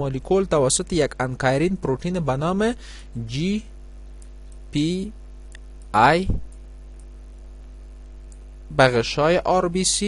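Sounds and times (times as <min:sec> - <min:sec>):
person speaking: 0:00.0 - 0:06.6
electrical mains hum: 0:00.0 - 0:10.0.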